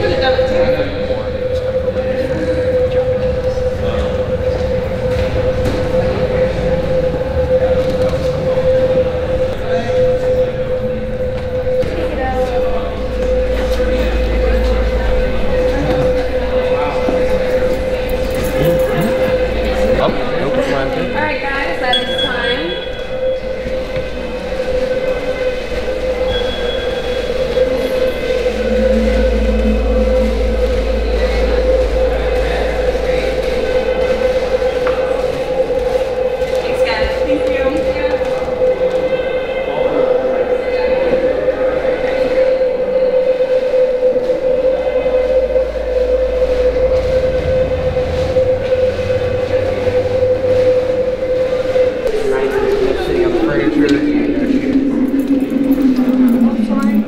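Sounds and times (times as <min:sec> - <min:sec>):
deep rumble: 0:00.0 - 0:57.0
steady drone: 0:00.0 - 0:57.0.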